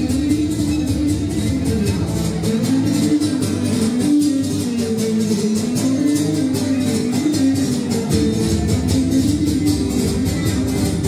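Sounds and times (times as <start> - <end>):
strummed lute accompaniment: 0.0 - 11.0.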